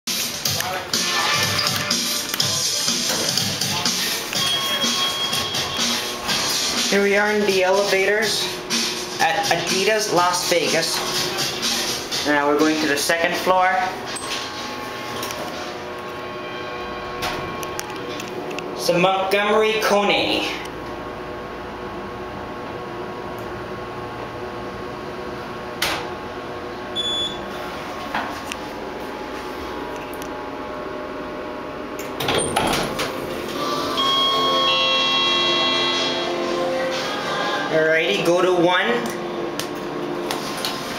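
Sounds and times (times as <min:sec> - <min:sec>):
background music: 0:00.1 - 0:13.9, 0:33.5 - 0:40.2
elevator hum: 0:01.3 - 0:40.9
elevator doors sliding open: 0:32.0 - 0:37.1.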